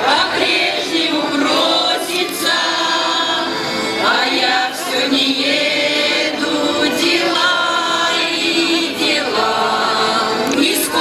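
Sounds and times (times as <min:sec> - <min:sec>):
folk choir singing: 0:00.0 - 0:11.0.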